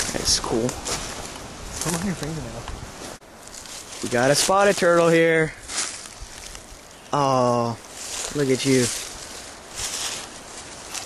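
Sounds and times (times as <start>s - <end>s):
rustling dry leaves and grass: 0.0s - 11.0s.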